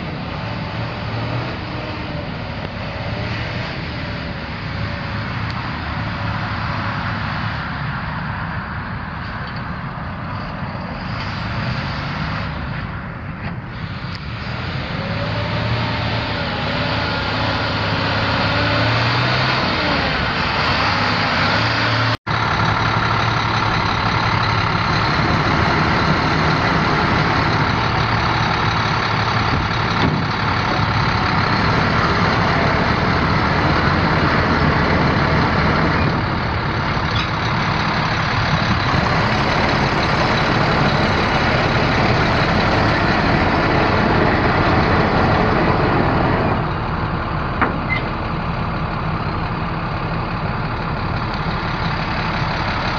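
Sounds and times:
diesel truck engine idling: 0:00.0 - 0:52.9.

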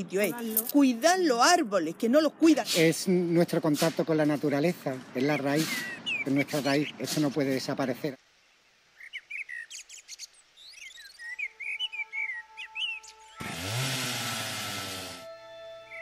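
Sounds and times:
birds chirping: 0:00.0 - 0:16.0
loud harsh buzzing burst: 0:13.4 - 0:15.7.

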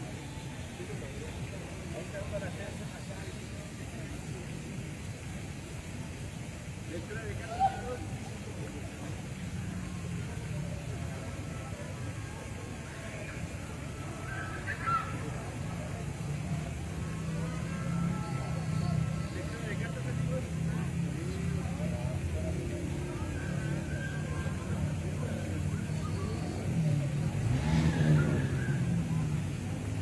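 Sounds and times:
low traffic rumble: 0:00.0 - 0:30.0
murmur of voices: 0:00.0 - 0:30.0.

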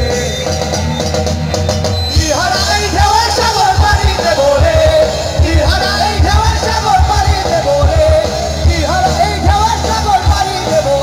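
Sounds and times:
drum kit: 0:00.0 - 0:11.0
electric guitar riff: 0:00.0 - 0:11.0.

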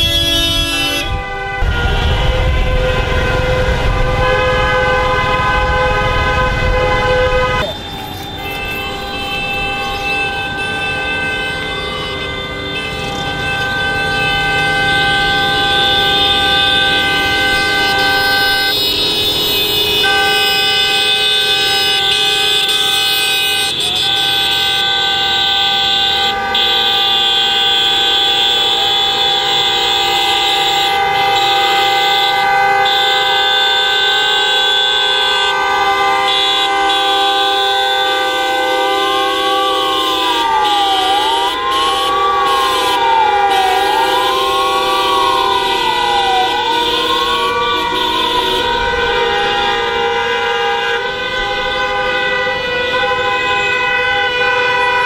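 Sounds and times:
car horns blaring: 0:00.0 - 0:55.0
siren rising and falling: 0:05.3 - 0:21.2, 0:39.6 - 0:49.9.

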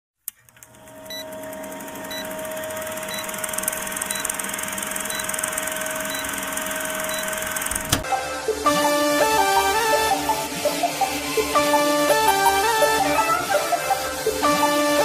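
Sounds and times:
film projector whirring: 0:00.3 - 0:15.0.

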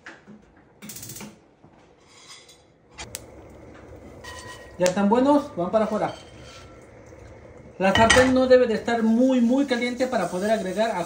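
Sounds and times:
gas flame hissing: 0:02.9 - 0:11.0.

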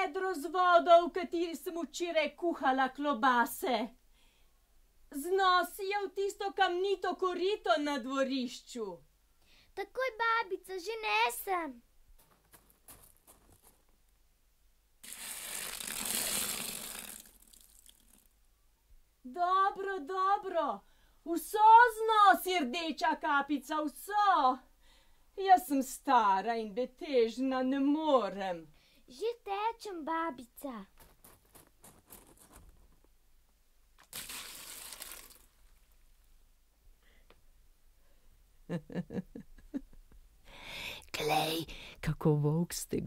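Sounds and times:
water splashing into stone trough: 0:15.0 - 0:18.3, 0:34.0 - 0:36.0.

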